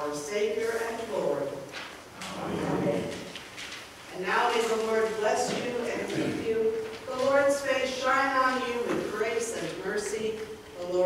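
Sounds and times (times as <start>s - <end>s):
voices echoing in a church: 0.0s - 3.5s, 4.1s - 11.0s.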